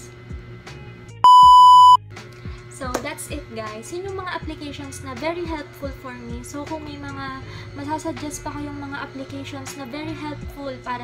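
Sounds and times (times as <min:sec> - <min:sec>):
faint background music: 0:00.0 - 0:11.0
loud electronic beep: 0:01.2 - 0:02.0.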